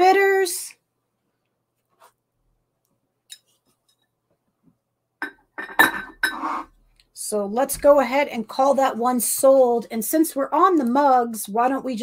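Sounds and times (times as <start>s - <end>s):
ceramic mug clinking: 5.2s - 6.6s.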